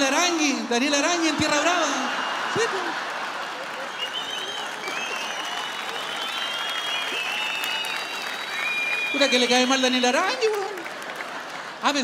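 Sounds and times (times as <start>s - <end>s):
audience applauding: 1.0s - 12.0s
high whistling: 3.9s - 10.2s.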